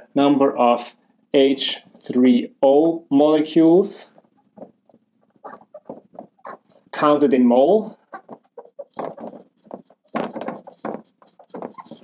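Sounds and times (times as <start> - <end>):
marker writing on whiteboard: 8.9 - 12.0.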